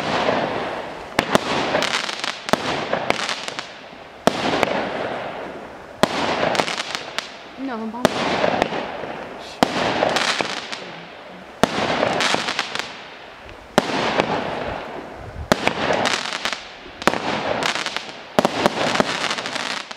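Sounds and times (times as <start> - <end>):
firework bangs: 0.0 - 19.9
firework crackling: 0.0 - 19.9.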